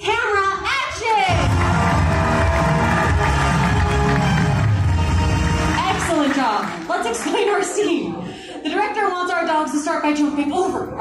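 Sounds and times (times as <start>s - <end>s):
show music with heavy bass: 1.3s - 6.1s
audience cheering: 1.3s - 7.5s
audience clapping fast: 1.3s - 7.8s.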